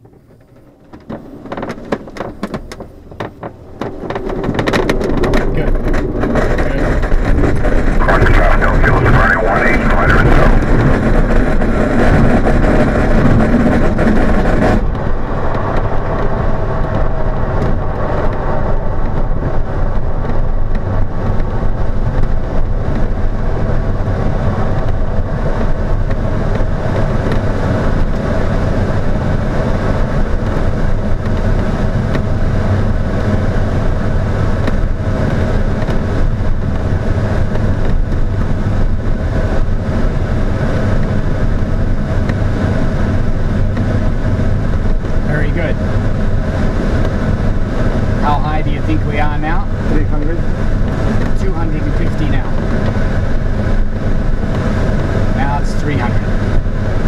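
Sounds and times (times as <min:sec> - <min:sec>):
wheel rumbling over grass: 0:00.0 - 0:55.2
airplane engine running: 0:00.0 - 0:57.0
rushing airflow: 0:00.0 - 0:57.0.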